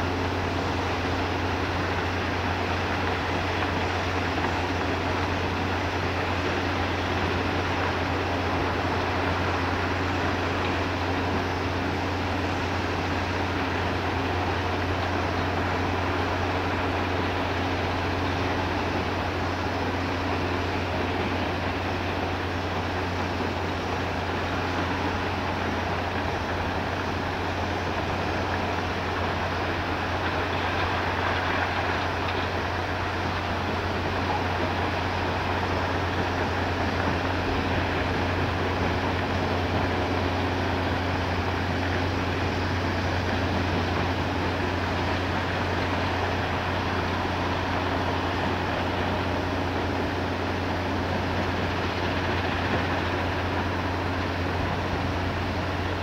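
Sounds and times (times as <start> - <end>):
crushing plant machinery drone: 0.0 - 56.0.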